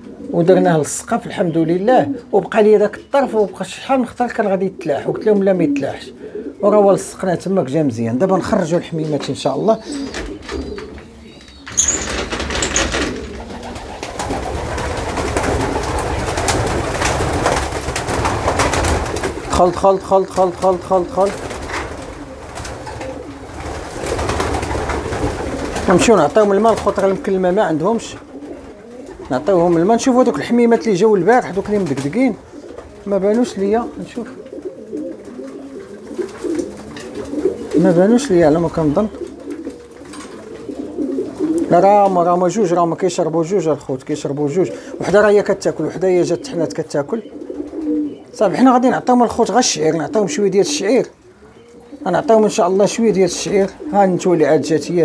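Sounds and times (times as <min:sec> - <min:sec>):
pigeons cooing: 0:00.0 - 0:55.0
wings flapping: 0:09.9 - 0:42.6, 0:47.3 - 0:48.2.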